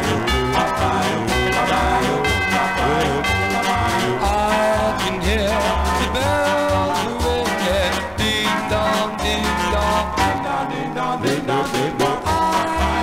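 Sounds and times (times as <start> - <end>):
doo-wop record playing: 0.0 - 13.0.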